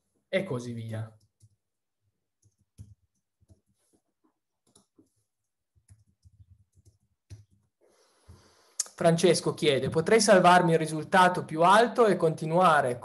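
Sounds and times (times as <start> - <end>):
keystrokes on computer keyboard: 1.2 - 1.6, 2.4 - 3.8, 4.6 - 7.7.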